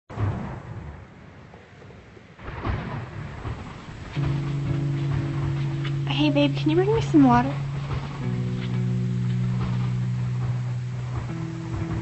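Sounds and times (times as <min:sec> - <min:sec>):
low rumble: 0:02.6 - 0:12.0
irregular rustling: 0:03.5 - 0:12.0.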